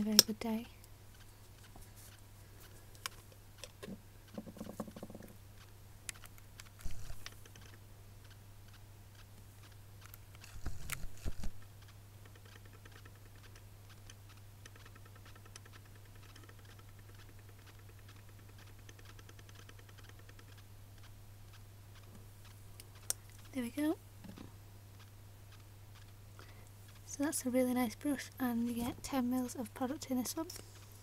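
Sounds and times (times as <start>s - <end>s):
handling clicks and ticks: 0.0s - 31.0s
steady low hum: 0.0s - 31.0s.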